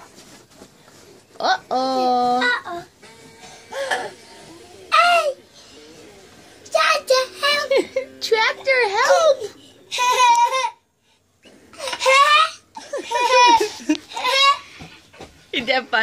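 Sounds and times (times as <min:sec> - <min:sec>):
toddler laughing and squealing: 0:08.9 - 0:10.8, 0:11.8 - 0:14.8.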